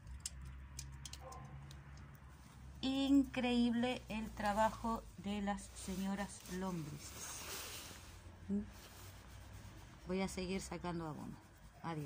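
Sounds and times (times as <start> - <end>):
bits dropping into bucket: 0.0 - 2.1
compost crackling in a hand: 0.0 - 2.3
low steady hum: 0.0 - 12.0.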